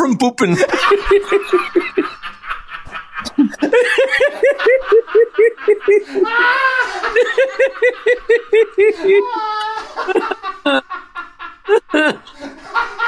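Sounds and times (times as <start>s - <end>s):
people laughing: 0.5s - 13.0s.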